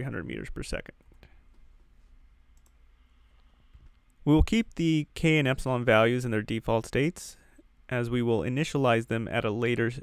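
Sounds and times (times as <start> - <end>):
faint low hum: 0.0 - 10.0
faint clicks: 2.5 - 4.2.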